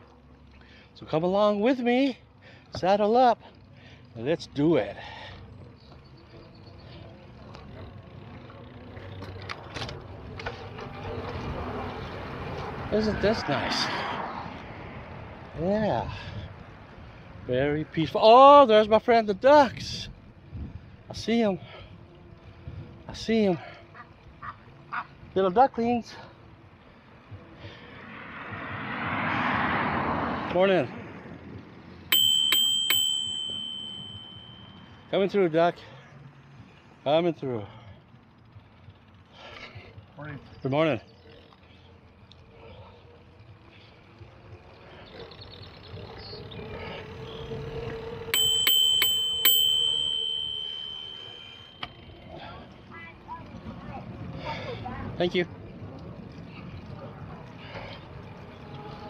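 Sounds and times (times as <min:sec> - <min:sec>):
vehicle passing with tyre noise: 0:00.0 - 0:59.0
bicycle bell ringing: 0:32.1 - 0:35.1, 0:48.0 - 0:52.6.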